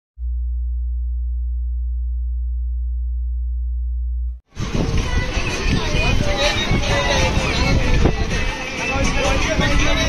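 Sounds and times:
low electronic hum tone: 0:00.2 - 0:04.4.

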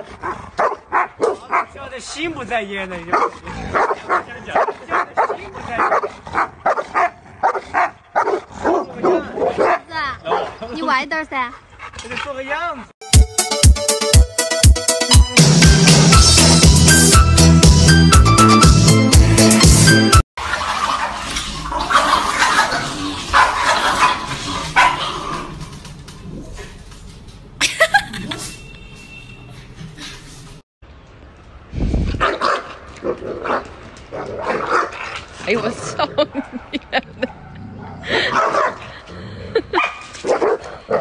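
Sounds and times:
small dogs barking: 0:00.0 - 0:01.8, 0:03.1 - 0:10.6, 0:22.0 - 0:25.4, 0:32.2 - 0:35.0, 0:36.4 - 0:38.8, 0:39.7 - 0:41.0.

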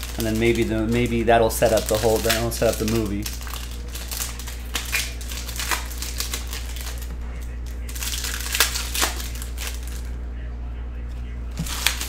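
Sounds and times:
foil wrapper crinkling: 0:00.0 - 0:10.1, 0:11.5 - 0:12.0
steady low hum: 0:00.0 - 0:12.0.

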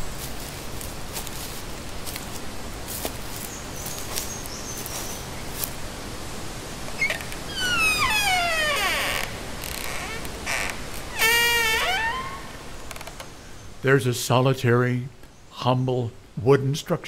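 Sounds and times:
wooden door hinges creaking: 0:06.9 - 0:13.4.

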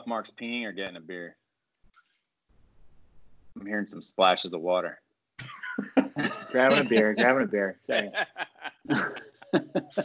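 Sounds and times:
men laughing: 0:05.5 - 0:10.0.

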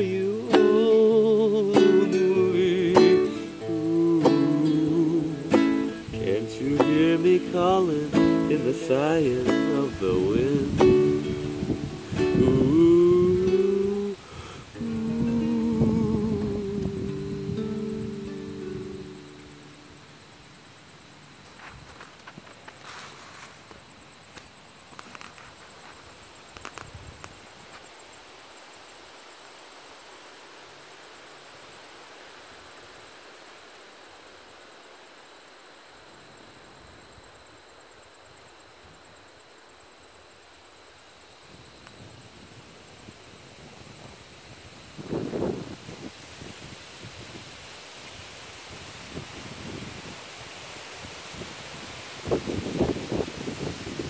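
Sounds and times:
breeze through grass and leaves: 0:00.0 - 0:54.0
faint clicks: 0:23.7 - 0:25.6, 0:26.5 - 0:27.4.

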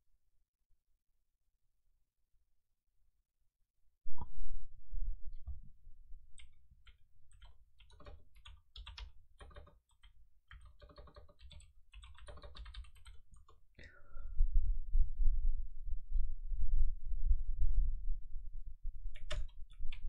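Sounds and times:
computer keyboard typing: 0:06.4 - 0:13.6, 0:19.2 - 0:20.0
uneven low rumble: 0:14.0 - 0:20.0.

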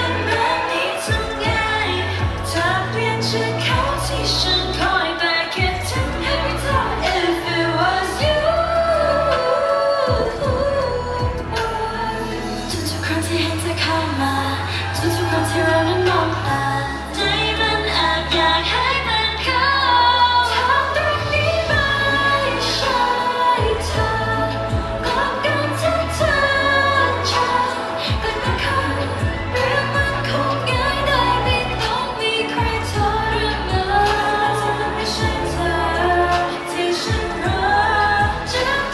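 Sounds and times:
pop backing track: 0:00.0 - 0:38.9
woman singing into a microphone: 0:00.0 - 0:38.9.

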